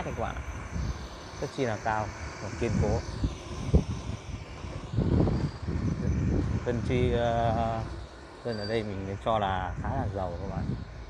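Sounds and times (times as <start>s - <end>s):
electric bike road noise: 0.0s - 11.0s
wind rumble on microphone: 0.0s - 11.0s.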